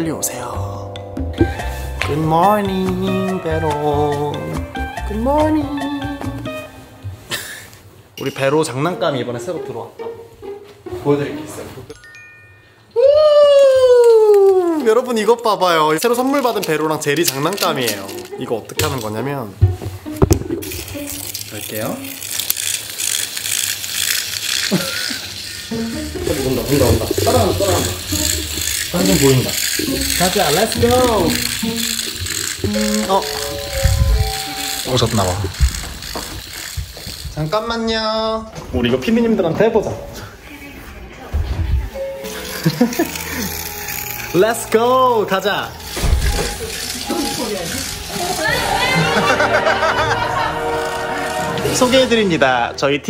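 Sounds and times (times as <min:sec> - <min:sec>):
person exclaiming: 0:13.0 - 0:14.8
motorized toy rattling on hard floor: 0:14.8 - 0:19.2, 0:20.4 - 0:37.7, 0:42.3 - 0:44.8, 0:45.6 - 0:52.2
high-pitched squeals: 0:25.4 - 0:36.4
excited voices: 0:48.1 - 0:52.2.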